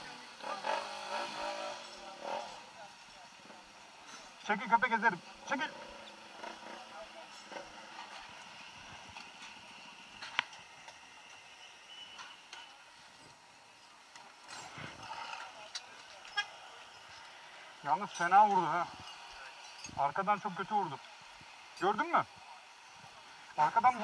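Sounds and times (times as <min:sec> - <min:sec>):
distant voices: 0:00.0 - 0:24.0
passing traffic: 0:00.0 - 0:24.0.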